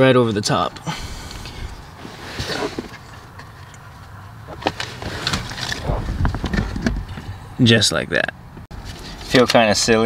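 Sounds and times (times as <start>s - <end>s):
low background rumble: 0.9s - 2.2s.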